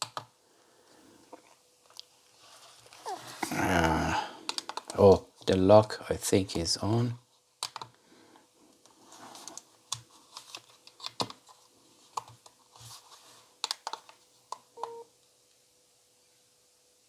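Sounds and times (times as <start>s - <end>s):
faint steady tone: 14.7s - 17.0s.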